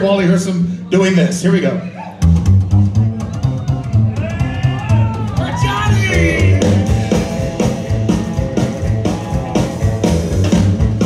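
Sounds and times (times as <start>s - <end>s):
slap upright bass: 2.2s - 11.0s.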